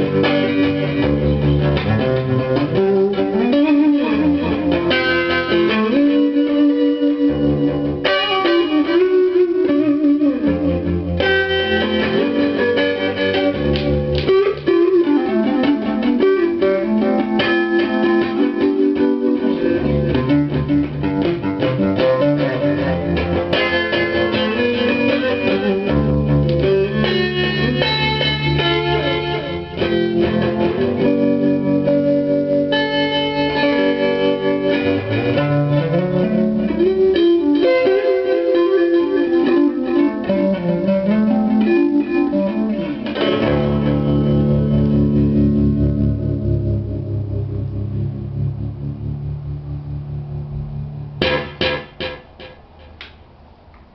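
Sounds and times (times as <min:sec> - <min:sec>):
electric guitar with delay: 0:00.0 - 0:53.7.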